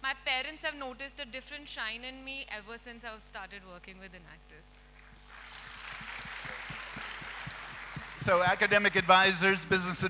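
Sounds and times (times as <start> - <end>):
audience applauding: 5.0 - 9.9.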